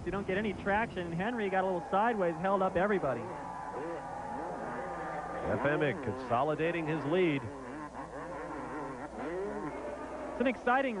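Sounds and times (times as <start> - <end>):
motocross bikes racing: 0.0 - 11.0.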